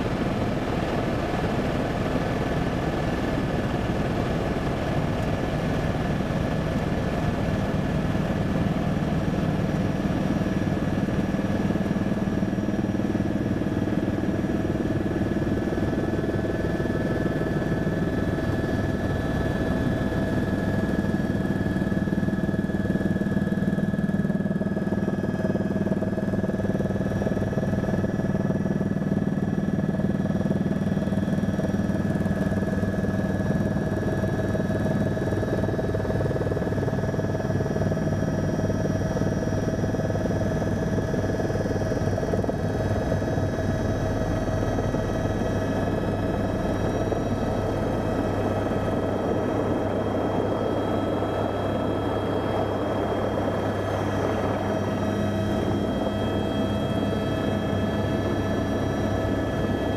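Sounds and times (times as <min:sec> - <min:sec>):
helicopter turbine and rotor: 0:00.0 - 0:59.9.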